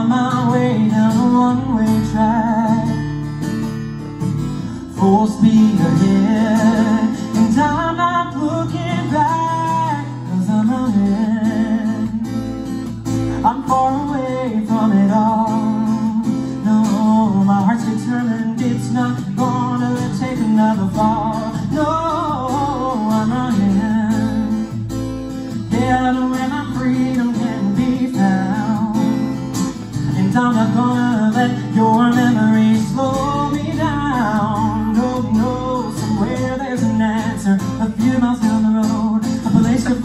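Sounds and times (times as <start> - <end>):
man singing with vibrato: 0.0 - 3.8, 4.6 - 40.0
strummed acoustic guitar: 0.0 - 40.0.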